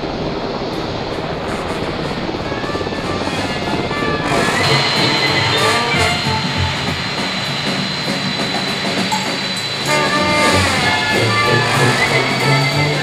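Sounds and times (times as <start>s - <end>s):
high engine whine: 0.0s - 13.0s
jet engines: 0.0s - 13.0s
music: 1.4s - 13.0s.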